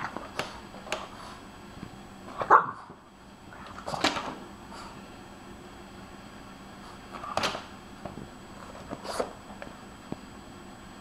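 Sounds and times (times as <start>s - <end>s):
puppy barking: 2.4s - 2.9s.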